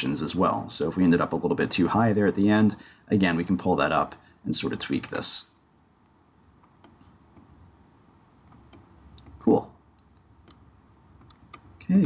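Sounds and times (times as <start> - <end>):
faint clicks: 10.0 - 11.9.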